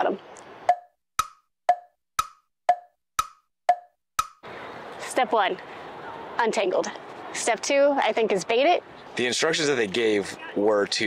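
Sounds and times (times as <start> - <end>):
faint outdoor background noise: 0.0 - 0.9, 4.4 - 11.0
tick-tock clock sound effect: 0.6 - 4.4.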